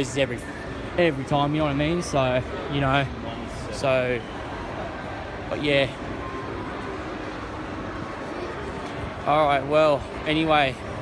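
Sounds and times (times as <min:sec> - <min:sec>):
shopping centre background noise: 0:00.0 - 0:11.0.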